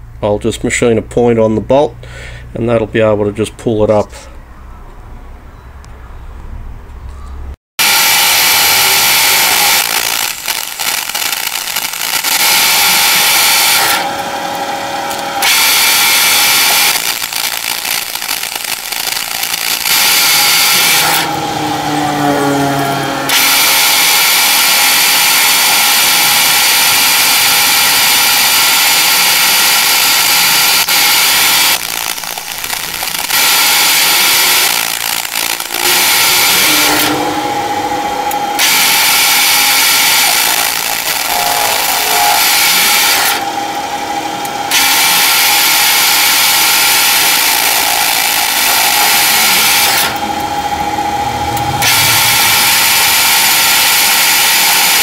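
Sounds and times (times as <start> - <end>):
lathe running whine: 7.8 - 55.0
lathe tool hissing cut: 7.8 - 55.0.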